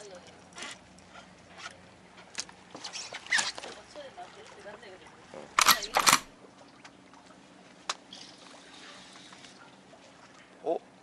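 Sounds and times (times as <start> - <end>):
camera shutter click: 5.6 - 6.3.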